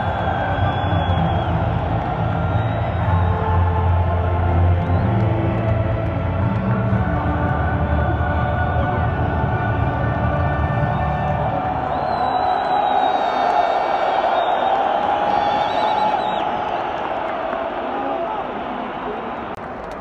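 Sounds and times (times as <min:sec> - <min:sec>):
music over loudspeakers: 0:00.0 - 0:12.0
large crowd noise: 0:00.0 - 0:20.0.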